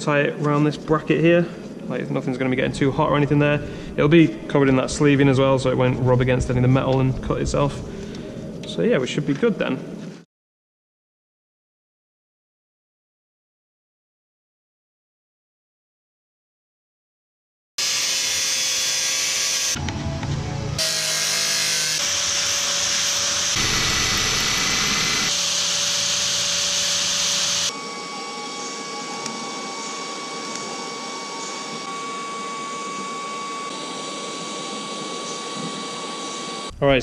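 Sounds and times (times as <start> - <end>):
angle grinder cutting metal: 17.8 - 19.9, 20.8 - 36.7
power tool whine: 17.8 - 36.7.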